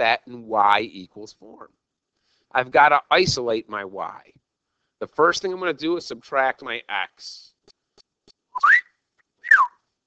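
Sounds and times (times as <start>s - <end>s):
person whistling gliding notes: 8.6s - 9.7s.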